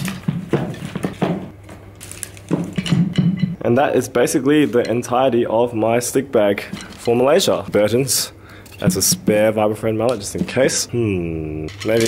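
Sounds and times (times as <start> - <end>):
wooden mallets clattering: 0.0 - 1.6.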